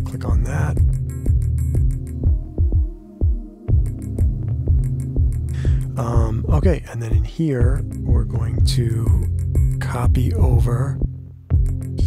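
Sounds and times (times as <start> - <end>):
electronic synth music: 0.0 - 12.0.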